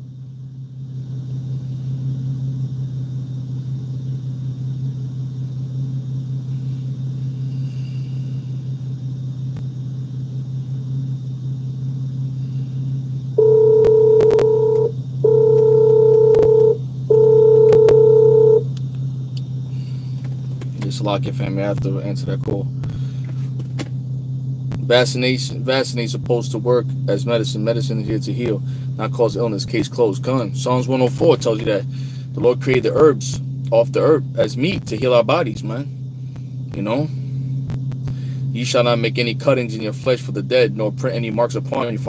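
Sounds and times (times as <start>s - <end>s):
low car cabin hum: 0.0s - 42.0s
long electronic beeps: 13.3s - 18.7s.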